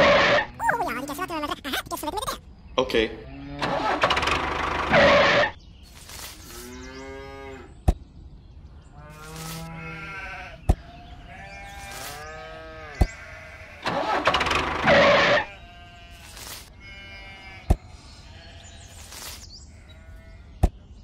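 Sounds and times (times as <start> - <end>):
animal bleating: 9.0 - 19.0, 19.7 - 20.6.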